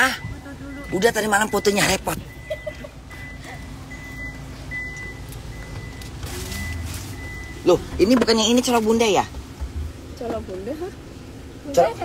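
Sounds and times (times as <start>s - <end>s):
high electronic warning beep: 0.0s - 7.8s
vehicle idling hum: 0.0s - 12.0s.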